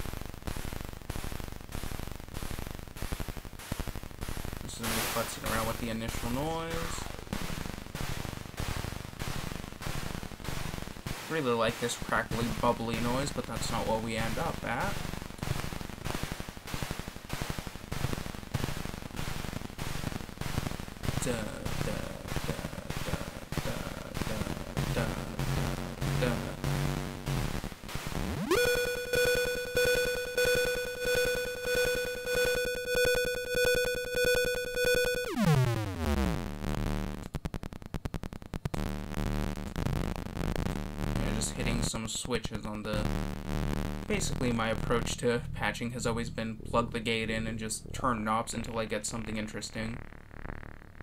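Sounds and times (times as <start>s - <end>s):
synthesizer rhythmic pulsing: 14.8s - 37.3s, 43.0s - 45.0s
synthesizer bright tone sweeping down: 28.3s - 36.5s.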